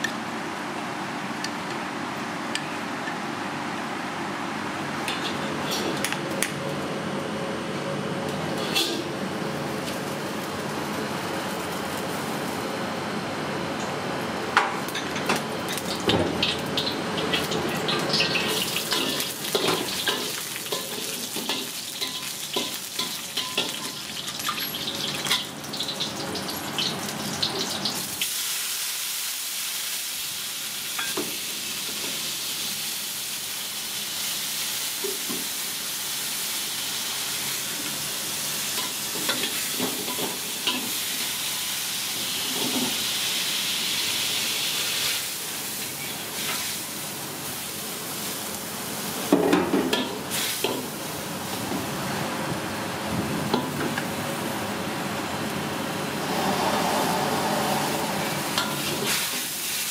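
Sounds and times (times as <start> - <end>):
food sizzling in hot oil: 15.8 - 51.6, 56.0 - 59.9.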